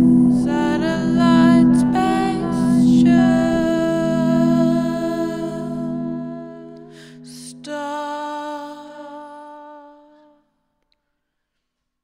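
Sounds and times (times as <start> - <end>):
electric organ chords: 0.0 - 8.2
person humming: 0.0 - 10.4.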